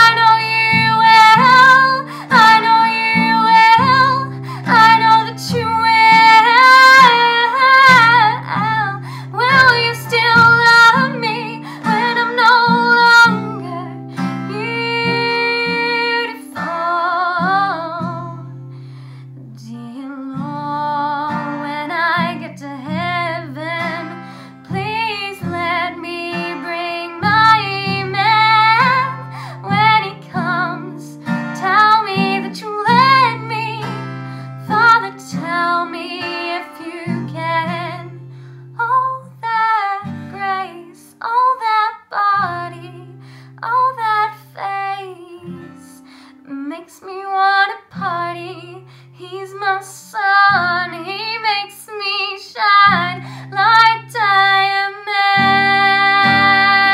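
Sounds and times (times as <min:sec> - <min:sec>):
girl singing: 0:00.0 - 0:18.6, 0:19.3 - 0:56.9
acoustic guitar strumming: 0:00.0 - 0:19.6, 0:20.4 - 0:39.4, 0:52.9 - 0:56.9.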